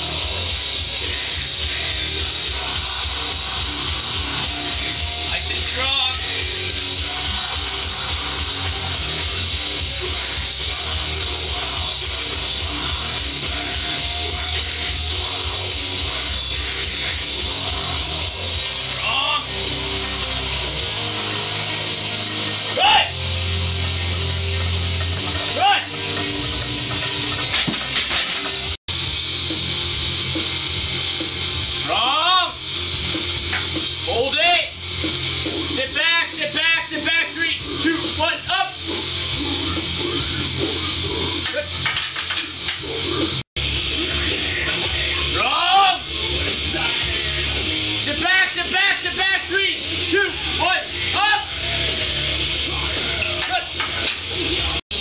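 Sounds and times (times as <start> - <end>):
loud rock music: 0.0 - 55.0
voices shouting or singing: 22.7 - 23.2, 48.2 - 53.8.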